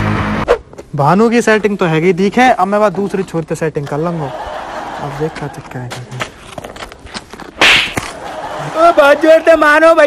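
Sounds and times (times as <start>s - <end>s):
loud swish: 7.6s - 8.1s.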